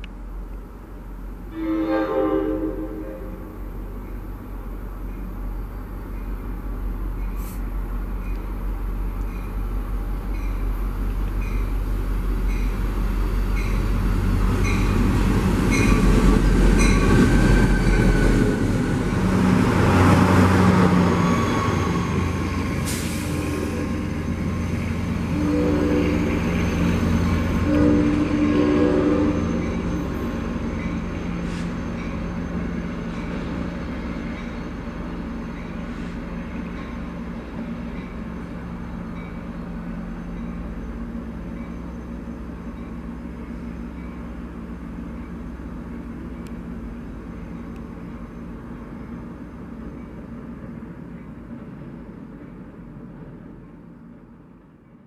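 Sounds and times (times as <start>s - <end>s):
diesel train rumbling past: 0.0s - 55.0s
train horn blasts: 1.5s - 3.7s, 23.2s - 24.3s, 25.2s - 26.7s, 27.6s - 29.7s.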